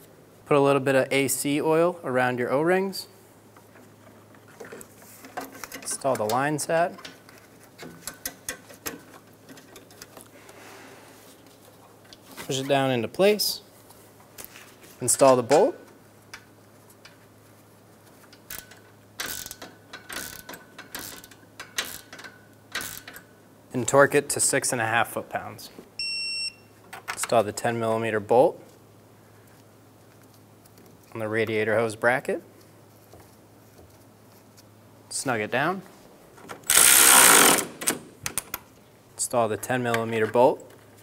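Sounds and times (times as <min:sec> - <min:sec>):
hand ratchet clicking: 0:18.4 - 0:23.3, 0:36.6 - 0:38.0
cordless ratchet running: 0:36.7 - 0:37.8.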